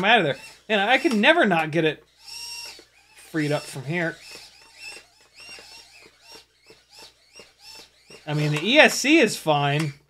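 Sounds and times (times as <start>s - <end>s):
drone motors whining in bursts: 0.0s - 9.2s.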